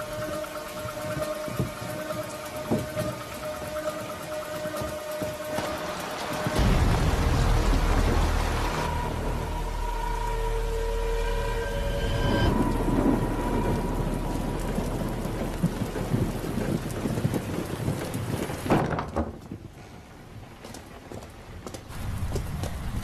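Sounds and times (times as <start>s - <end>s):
thunder rumbling: 0.0s - 19.7s
heavy rain pouring: 0.0s - 23.0s
loud hit: 6.5s - 16.3s.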